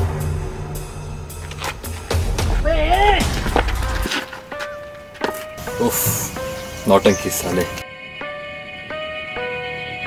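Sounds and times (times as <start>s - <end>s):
low droning score: 0.0s - 2.7s.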